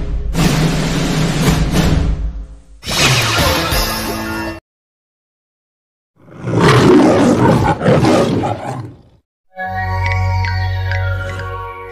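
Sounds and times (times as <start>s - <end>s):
lion roaring: 6.2s - 9.2s.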